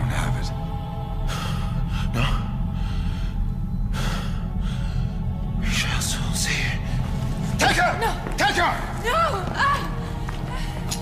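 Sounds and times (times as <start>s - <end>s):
low droning film score: 0.0s - 11.0s.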